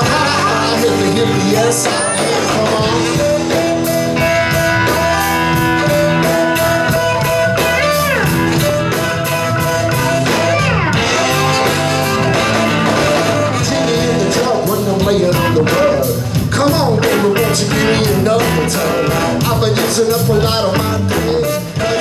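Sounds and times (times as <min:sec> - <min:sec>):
saxophone: 0:00.0 - 0:16.2, 0:20.6 - 0:22.0
sliding guitar notes: 0:00.0 - 0:16.3
bass guitar: 0:00.0 - 0:22.0
drums keeping a steady beat: 0:00.0 - 0:22.0
electric guitars: 0:00.0 - 0:22.0.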